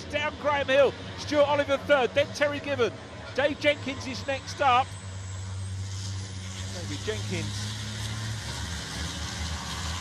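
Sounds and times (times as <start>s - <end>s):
racing truck diesel engines: 0.0s - 10.0s.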